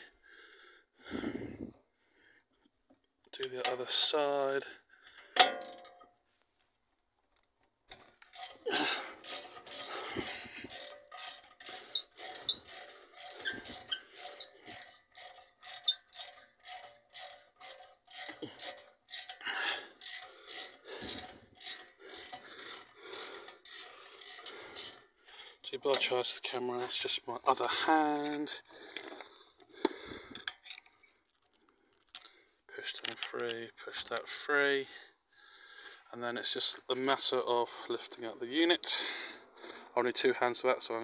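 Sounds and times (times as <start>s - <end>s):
ratchet clicking: 8.2s - 25.1s.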